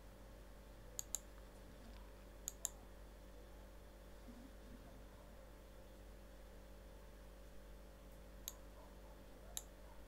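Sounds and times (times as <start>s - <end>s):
faint steady hum: 0.0s - 10.0s
computer mouse clicking: 1.0s - 2.8s.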